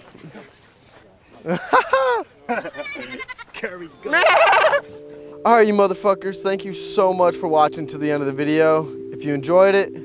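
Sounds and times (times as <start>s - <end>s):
people's voices: 0.1s - 4.8s
young goat bleating: 2.7s - 4.8s.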